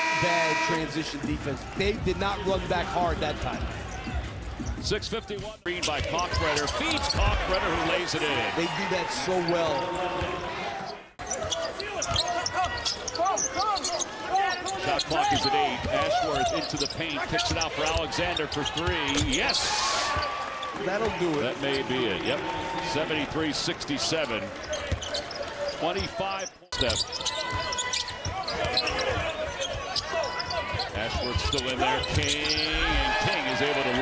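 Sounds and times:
arena crowd voices: 0:00.0 - 0:34.0
sneakers squeaking: 0:10.8 - 0:20.8, 0:24.6 - 0:33.5.

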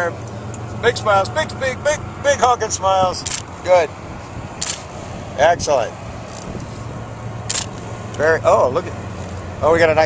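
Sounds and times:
steady low rumble: 0:00.0 - 0:10.0
camera shutter click: 0:04.6 - 0:04.8, 0:07.5 - 0:07.8.

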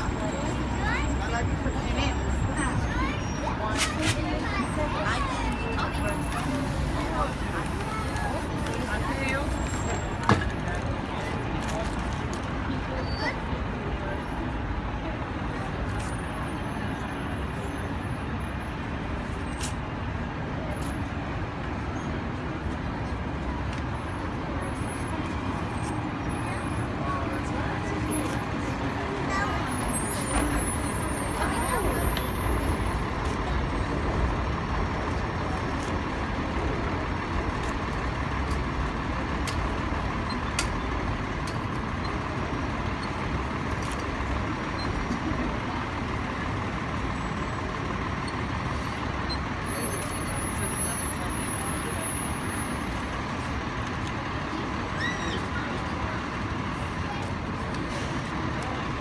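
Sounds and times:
people talking: 0:00.0 - 0:16.1, 0:22.8 - 0:37.9, 0:49.6 - 0:59.0
city street traffic: 0:00.0 - 0:59.0.

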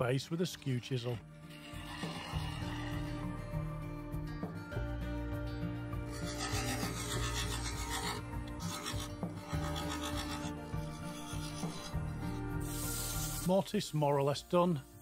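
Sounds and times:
lathe tool scraping wood: 0:01.3 - 0:03.6, 0:06.1 - 0:13.5.

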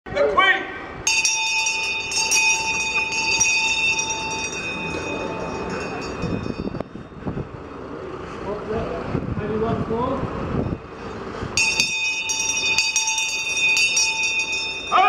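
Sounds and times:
voices: 0:00.1 - 0:10.4
brass handbell ringing: 0:01.1 - 0:07.2, 0:11.6 - 0:15.0.

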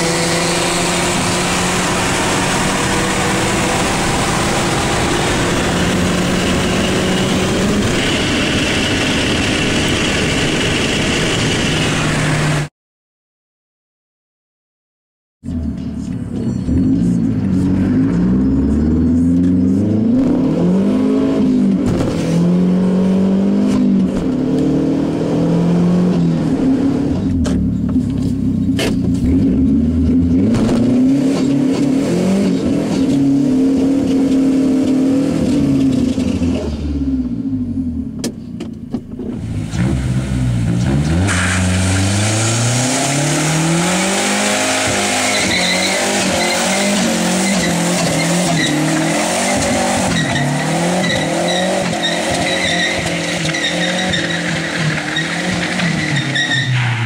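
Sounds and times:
car engine revving: 0:00.0 - 0:12.7, 0:15.5 - 0:38.2, 0:39.2 - 0:57.0
tyres squealing: 0:45.0 - 0:57.0.

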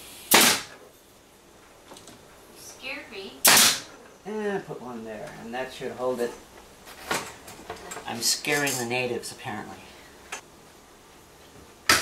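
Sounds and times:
nail gun shot: 0:00.2 - 0:00.8, 0:03.4 - 0:03.9.

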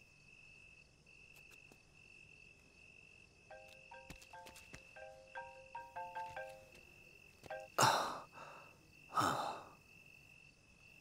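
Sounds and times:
crickets trilling: 0:00.0 - 0:11.0
mobile phone ringtone: 0:03.6 - 0:06.8
heavy breaths: 0:07.8 - 0:09.8.

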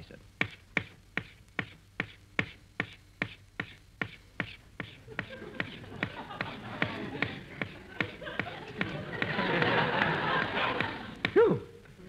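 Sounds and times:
rhythmic cutting strokes: 0:00.0 - 0:12.0
audience laughter: 0:05.0 - 0:11.4.

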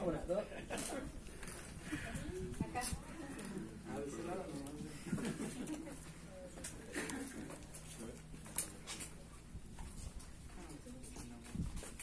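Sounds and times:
murmur of voices: 0:00.0 - 0:09.6.

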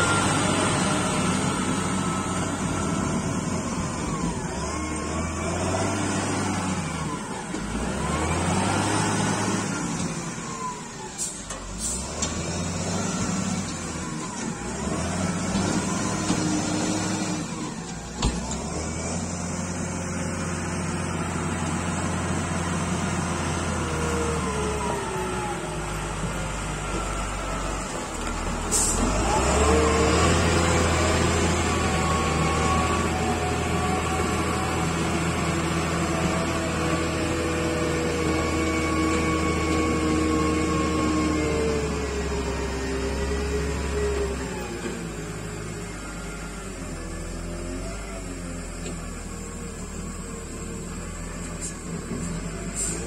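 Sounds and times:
diesel engine revving with whine: 0:00.0 - 0:53.0.

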